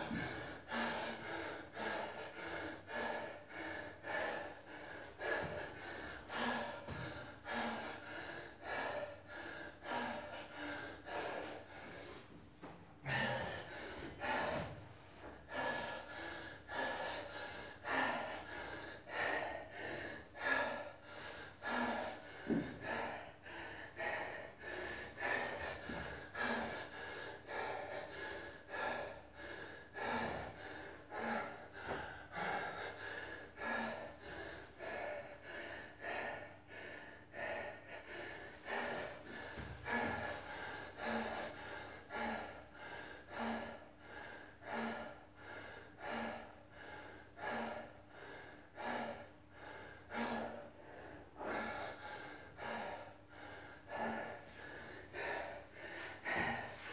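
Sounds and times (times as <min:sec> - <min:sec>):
man panting heavily: 0:00.0 - 0:56.9.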